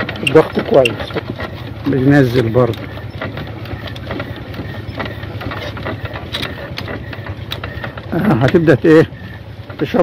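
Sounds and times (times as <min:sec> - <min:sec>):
diesel engine low rumble: 0:00.0 - 0:10.0.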